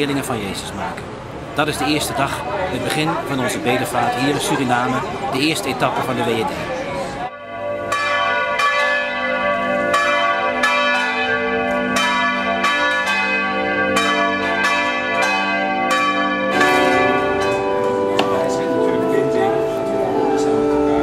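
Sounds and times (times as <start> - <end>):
bells ringing: 7.3 - 21.0
sustained low tone: 17.5 - 21.0.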